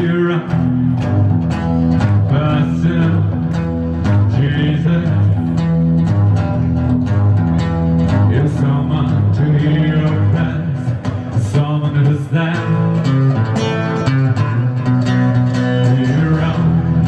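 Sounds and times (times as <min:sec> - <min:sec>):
man singing: 0:00.0 - 0:05.8, 0:08.1 - 0:17.0
acoustic guitar strummed: 0:00.0 - 0:17.0.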